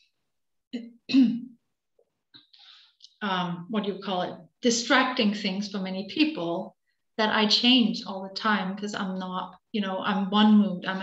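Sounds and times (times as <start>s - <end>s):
person clearing throat: 0.8s - 1.5s.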